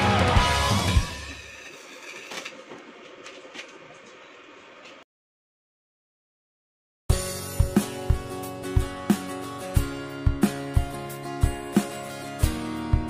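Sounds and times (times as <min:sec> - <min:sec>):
rock music: 0:00.0 - 0:01.4, 0:07.1 - 0:13.0
faint workshop background: 0:00.6 - 0:05.1.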